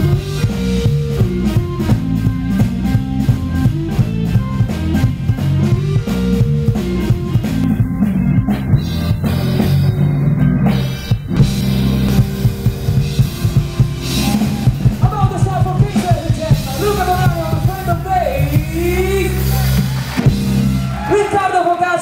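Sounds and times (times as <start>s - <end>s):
drum hits: 0.0s - 20.9s
live blues band playing: 0.0s - 22.0s
person singing: 14.2s - 19.9s.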